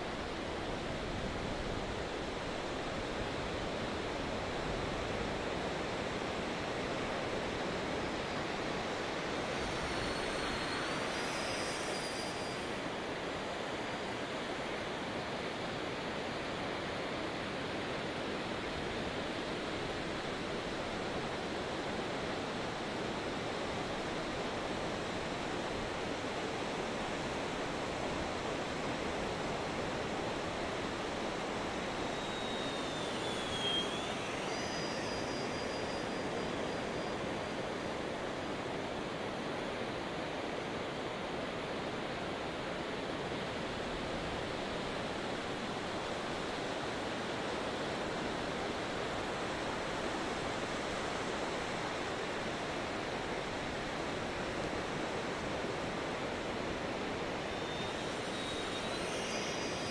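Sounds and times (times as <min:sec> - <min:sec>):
model jet whine: 0:00.0 - 0:59.9.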